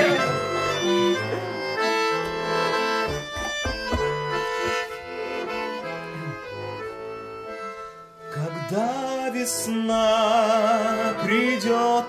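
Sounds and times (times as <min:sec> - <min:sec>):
button accordion playing folk melody: 0:00.0 - 0:12.0.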